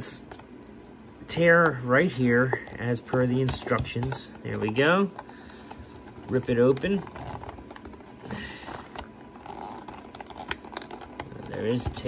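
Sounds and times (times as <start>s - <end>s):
plastic packaging crackling: 0.1s - 12.0s
cardboard tearing: 6.0s - 12.0s.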